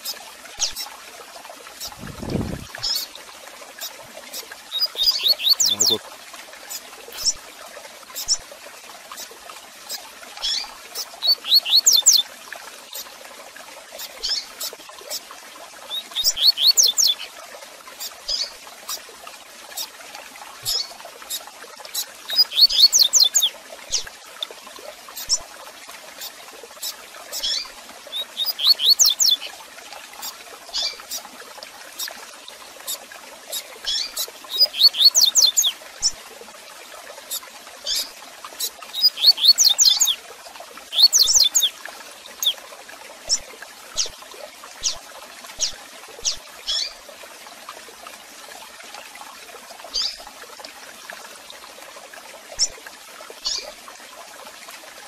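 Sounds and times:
bird chirps: 4.8s - 6.0s, 11.2s - 12.2s, 28.4s - 29.4s, 34.5s - 35.7s, 39.0s - 40.2s, 40.9s - 41.7s.

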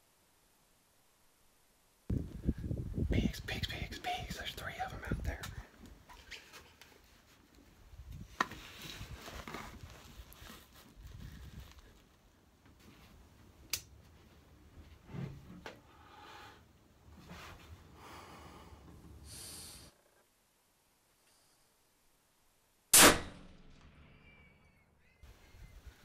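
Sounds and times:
rumbling buffeting on microphone: 2.1s - 5.6s
person whispering: 3.1s - 6.6s.

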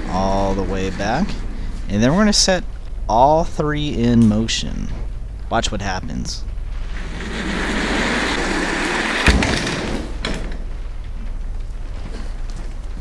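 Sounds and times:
chair casters rolling on hard floor: 6.7s - 11.3s.

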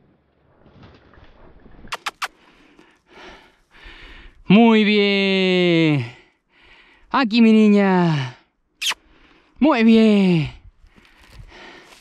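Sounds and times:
sharp clicks: 1.9s - 2.4s.

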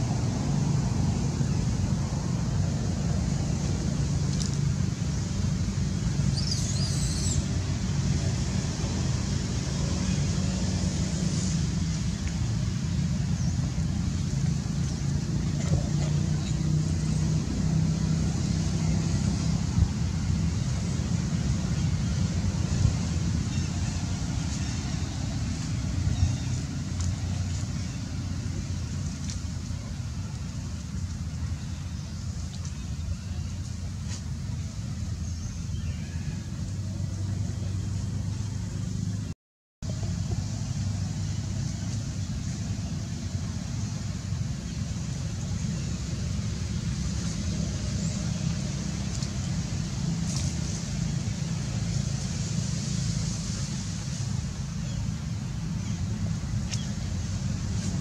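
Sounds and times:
low outdoor rumble: 0.0s - 58.0s.

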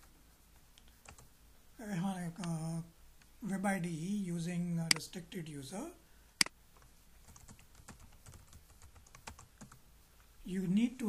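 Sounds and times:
computer keyboard typing: 1.0s - 1.3s, 7.2s - 9.8s.

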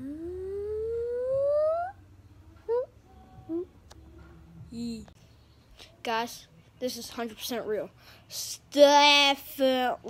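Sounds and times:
rising pitched tone: 0.0s - 3.8s.

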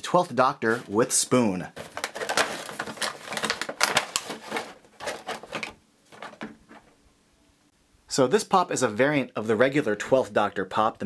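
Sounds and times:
plastic packaging crinkling and clicking: 1.7s - 7.0s.

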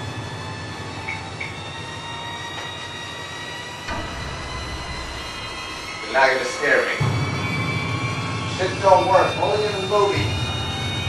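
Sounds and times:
low rumbling drone: 0.0s - 11.0s
sustained suspense music tones: 0.0s - 11.0s.

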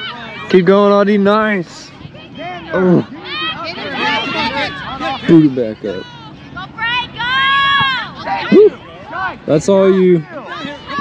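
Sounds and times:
spectators calling out: 2.0s - 11.0s.

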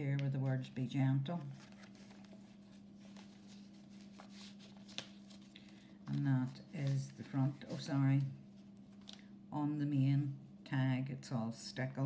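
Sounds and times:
low steady hum: 0.0s - 12.0s
paper tags rustling: 1.4s - 8.3s.

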